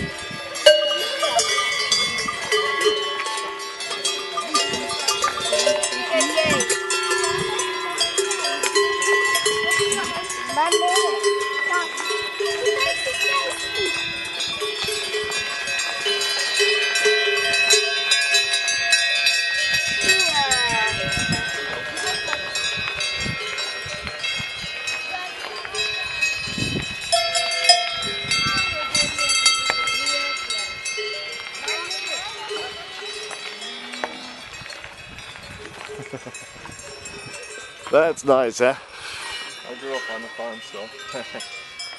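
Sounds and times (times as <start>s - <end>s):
cowbells clanking: 0.0s - 41.9s.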